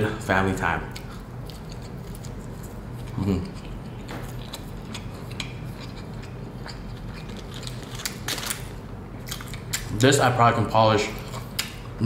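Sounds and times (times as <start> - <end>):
person chewing with mouth closed: 0.9 - 8.6.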